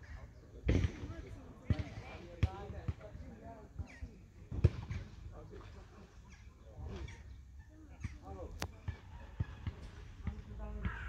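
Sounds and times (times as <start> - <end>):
people talking: 0.0 - 7.2, 7.9 - 11.0.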